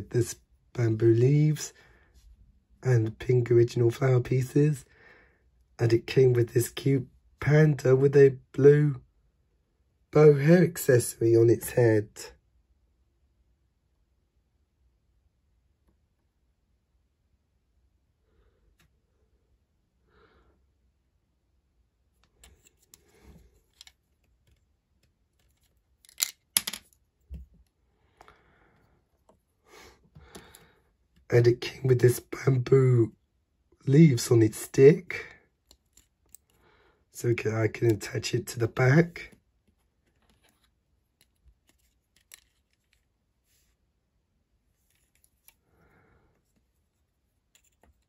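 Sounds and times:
plastic bricks clicking: 0:25.4 - 0:27.0.

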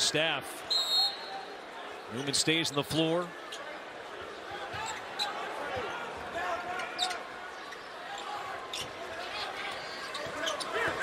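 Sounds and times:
sneakers squeaking: 0:10.0 - 0:11.0.

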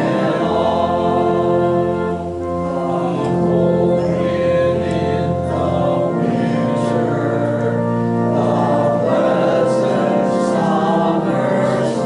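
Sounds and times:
congregation singing a hymn: 0:00.0 - 0:12.0
keyboard accompaniment: 0:00.0 - 0:12.0.

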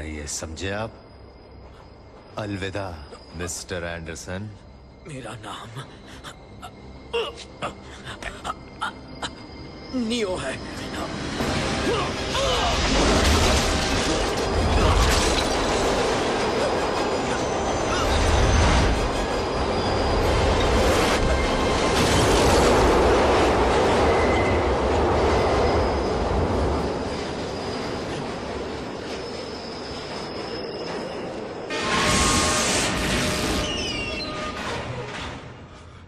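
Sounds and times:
subway train wheels rumbling: 0:00.0 - 0:36.0
high wheel squeals: 0:14.1 - 0:22.7, 0:23.8 - 0:35.9.

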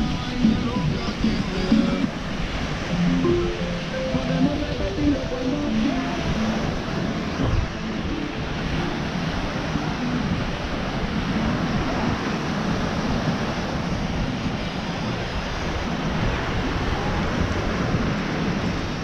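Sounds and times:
surf breaking on shore: 0:00.0 - 0:19.0
wind on microphone: 0:04.6 - 0:19.0.

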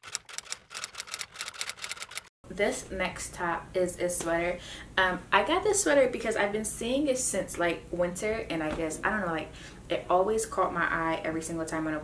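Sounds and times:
rapid typewriter key clicks: 0:00.0 - 0:02.3.

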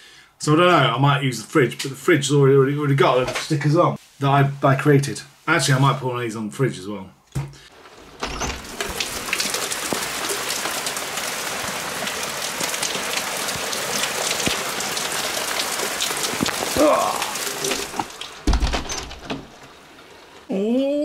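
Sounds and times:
rain pattering: 0:07.6 - 0:21.0.

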